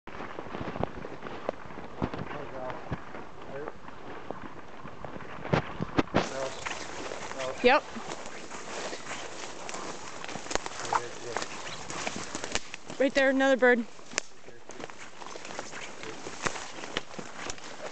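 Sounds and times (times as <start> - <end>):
footsteps through undergrowth: 0.1 - 17.9
leaves and brush rustling: 0.1 - 17.9
twigs snapping underfoot: 6.0 - 13.0, 14.0 - 17.9.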